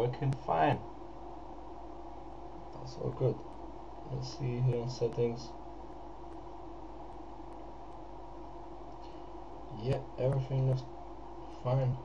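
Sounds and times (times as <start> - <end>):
room tone hum and hiss: 0.0 - 12.0.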